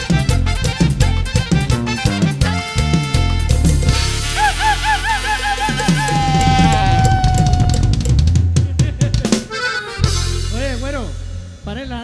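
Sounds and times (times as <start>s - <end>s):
band music with drums and bass: 0.0s - 12.0s
high wavering yelping notes: 4.4s - 8.4s.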